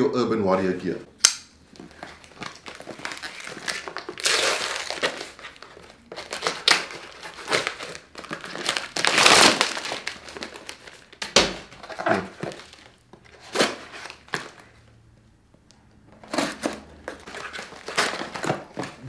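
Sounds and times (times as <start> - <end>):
plastic bag crinkling: 1.7 - 14.7.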